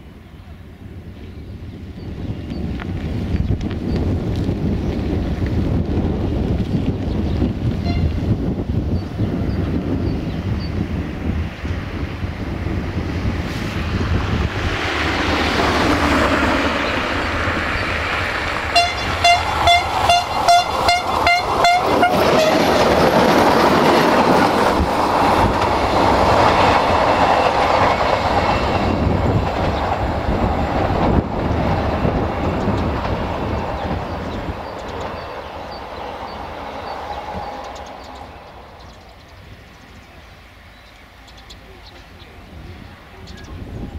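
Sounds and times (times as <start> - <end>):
train passing at speed: 0.0 - 43.9.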